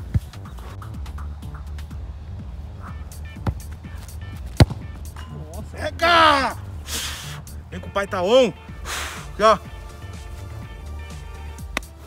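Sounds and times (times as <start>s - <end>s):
background music with steady beat: 0.0s - 12.0s
football kicked thud: 3.4s - 5.2s.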